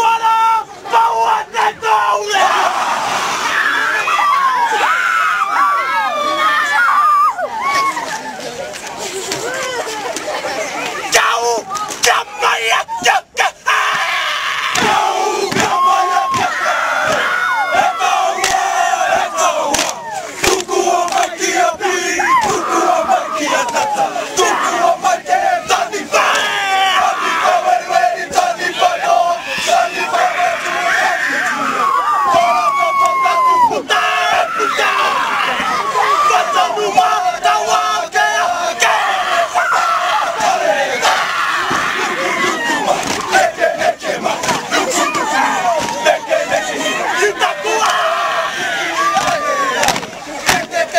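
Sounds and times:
hands slapping bodies: 49.2s - 50.7s.

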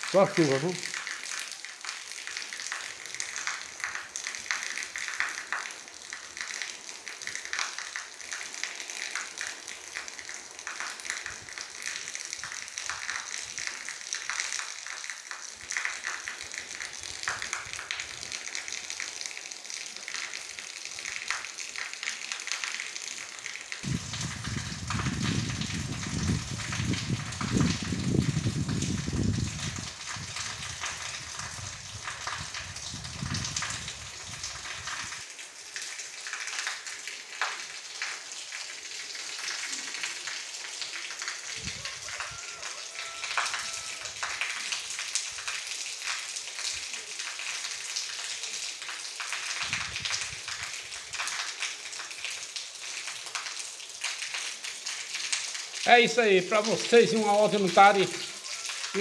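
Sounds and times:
rain falling: 0.0s - 59.0s.

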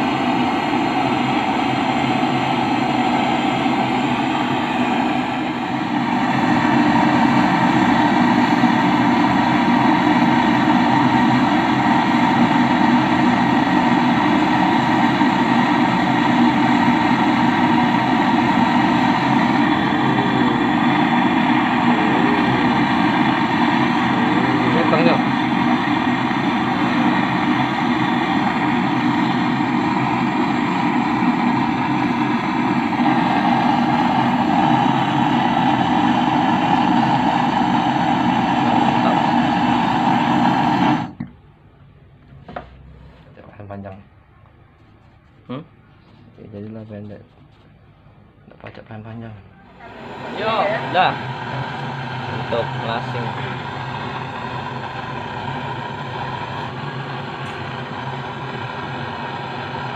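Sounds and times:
torch flame hissing: 0.0s - 41.3s, 49.7s - 59.9s.

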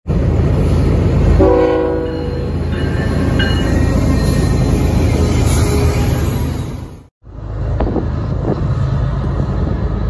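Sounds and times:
diesel train rumbling: 0.0s - 10.0s
locomotive horn chord: 1.4s - 2.3s.

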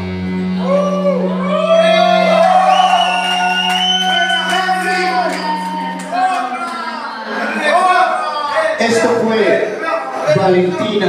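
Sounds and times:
audience cheering and whooping: 0.5s - 8.8s.

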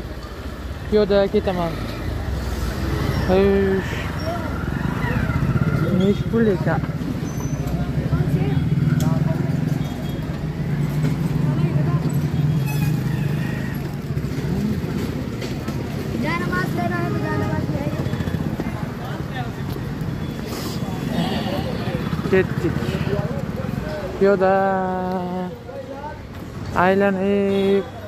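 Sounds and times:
passers-by talking: 0.0s - 28.0s.

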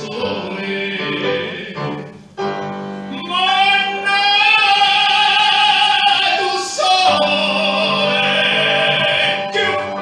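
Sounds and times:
person singing with vibrato: 0.0s - 2.3s, 3.1s - 10.0s
held musical accompaniment: 0.0s - 10.0s.

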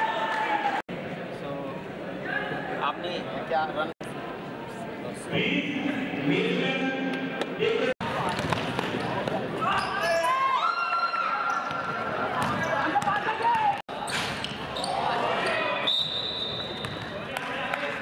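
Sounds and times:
high steady whistle-like tone: 15.8s - 16.8s.

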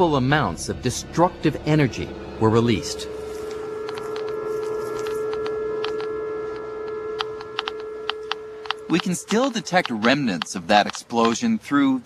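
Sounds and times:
steady hum: 0.0s - 12.0s
geiger counter clicking: 3.5s - 11.6s.

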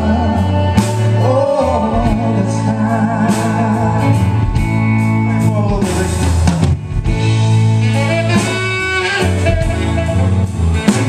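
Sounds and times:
live band playing blues: 0.0s - 11.0s.

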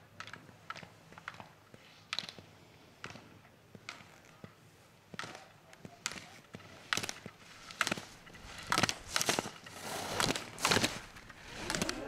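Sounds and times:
skis clacking and scraping: 0.2s - 12.0s.

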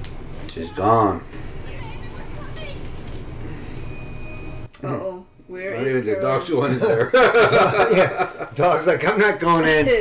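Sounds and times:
high whining tones: 0.3s - 6.5s.

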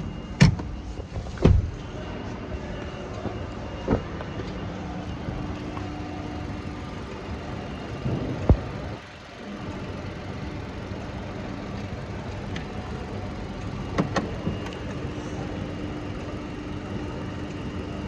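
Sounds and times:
car engine idling: 3.0s - 18.0s.

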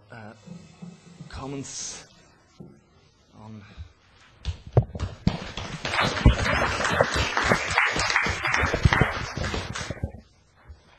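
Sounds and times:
audience applauding: 5.3s - 10.1s.

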